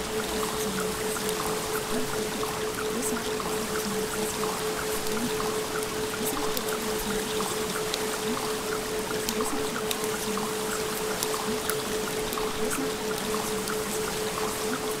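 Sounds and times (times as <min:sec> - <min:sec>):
water droplet ticks: 0:00.0 - 0:15.0.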